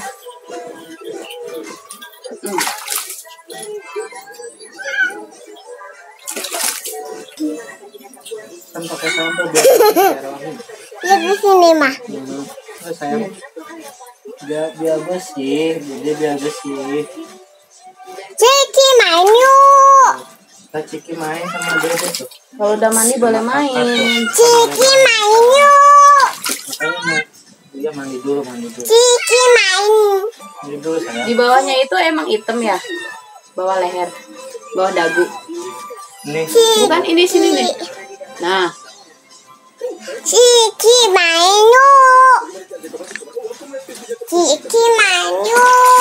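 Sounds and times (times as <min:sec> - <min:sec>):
water splashing in a tub: 0:02.4 - 0:03.4, 0:06.2 - 0:07.2, 0:21.5 - 0:22.4, 0:26.2 - 0:27.1.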